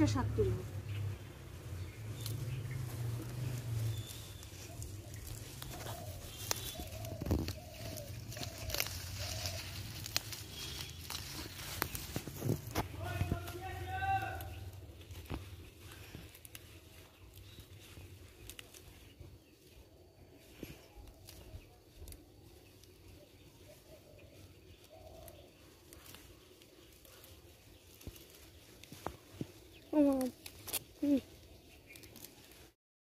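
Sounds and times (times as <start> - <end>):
person speaking: 0.0 - 0.8, 12.5 - 15.0, 29.8 - 31.4
leaves rustling: 0.0 - 32.8
stems snapping: 1.8 - 19.5, 20.5 - 32.8.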